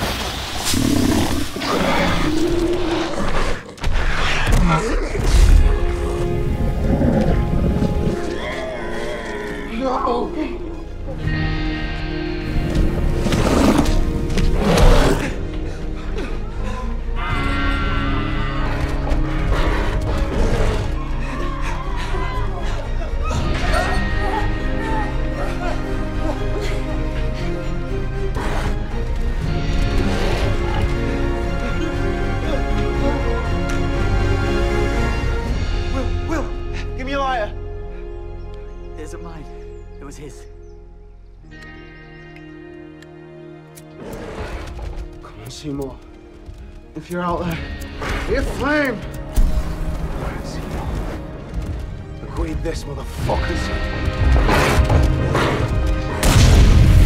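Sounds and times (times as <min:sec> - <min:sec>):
film score with held tones: 0:00.0 - 0:57.0
monster roaring: 0:00.6 - 0:03.8.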